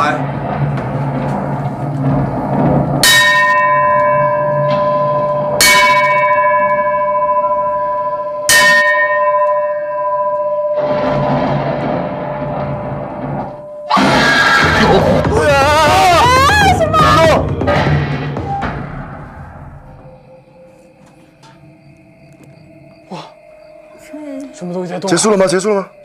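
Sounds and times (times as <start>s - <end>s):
low drone: 0.0s - 8.5s, 17.0s - 26.0s.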